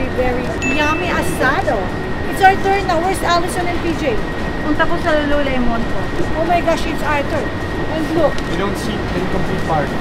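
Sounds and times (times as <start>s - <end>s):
people talking: 0.0s - 10.0s
street noise rumble: 0.0s - 10.0s
faint high-pitched tone: 0.6s - 1.9s.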